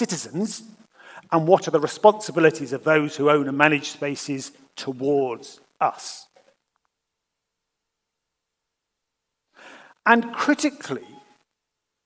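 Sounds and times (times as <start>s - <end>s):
man's short in-breath: 9.5s - 10.0s.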